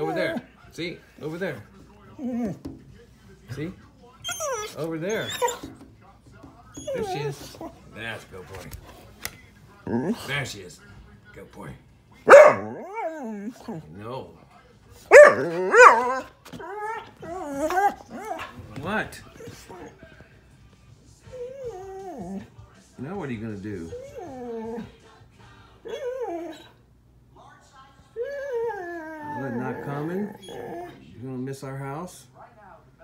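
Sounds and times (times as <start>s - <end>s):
dog whining: 0.0s - 0.4s, 2.1s - 2.6s, 4.2s - 5.8s, 6.7s - 7.8s, 12.3s - 13.8s, 15.1s - 18.6s, 21.2s - 22.5s, 23.8s - 24.9s, 25.8s - 26.8s, 28.2s - 31.0s
dog barking: 12.2s - 13.3s, 15.1s - 16.3s.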